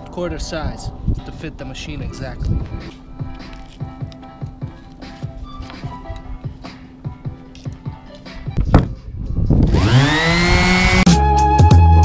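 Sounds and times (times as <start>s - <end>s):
electric sander motor whining: 9.6s - 11.1s.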